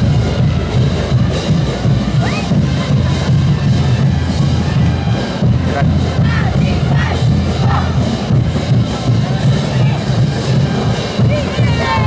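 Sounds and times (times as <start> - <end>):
parade band music: 0.0 - 12.0
dancers shouting in chorus: 11.4 - 12.0.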